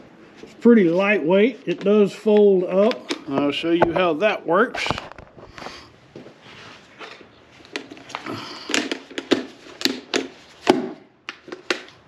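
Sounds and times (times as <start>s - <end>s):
rustling and sliding: 4.8s - 8.4s.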